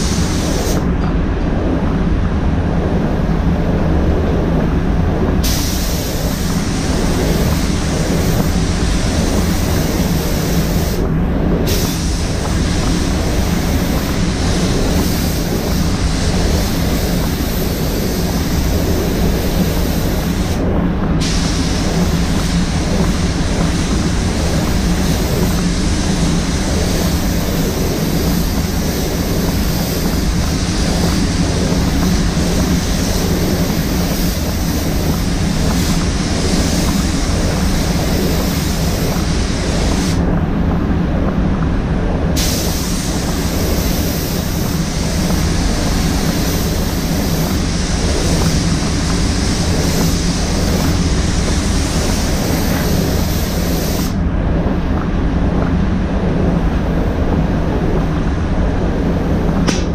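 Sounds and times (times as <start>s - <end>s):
spray gun air hissing: 0.0s - 0.9s, 5.4s - 40.3s, 42.4s - 54.2s
fans humming: 0.0s - 59.9s.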